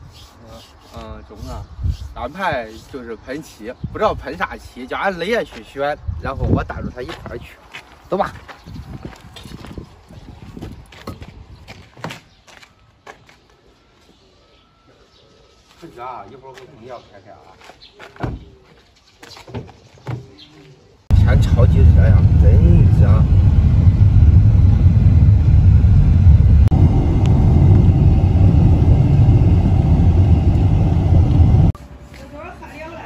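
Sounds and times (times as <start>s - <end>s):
wind and road noise rumble: 0.0s - 12.8s, 21.1s - 33.0s
footsteps on dirt path: 7.0s - 14.2s, 17.4s - 20.8s, 31.8s - 33.0s.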